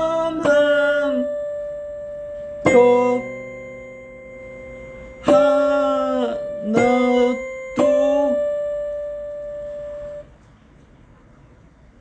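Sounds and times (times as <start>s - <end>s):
piano note ringing: 0.0s - 10.4s.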